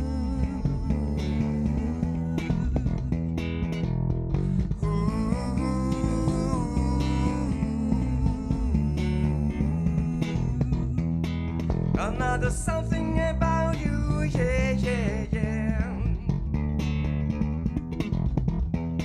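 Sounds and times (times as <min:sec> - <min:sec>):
solo electric bass guitar: 0:00.0 - 0:19.0.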